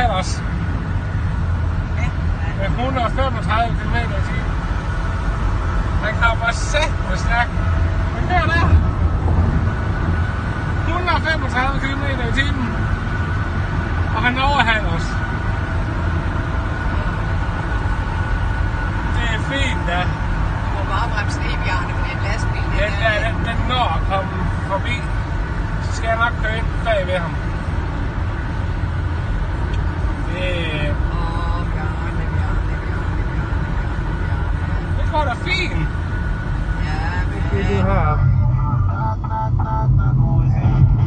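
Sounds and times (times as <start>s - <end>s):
road and wind rumble in car: 0.0s - 41.0s
man speaking: 22.8s - 25.1s, 37.4s - 39.2s.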